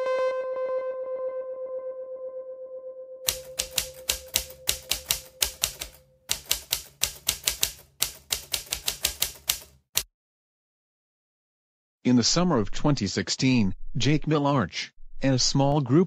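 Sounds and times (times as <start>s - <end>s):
held musical note: 0.0s - 6.1s
typewriter keystroke clicks: 3.3s - 10.1s.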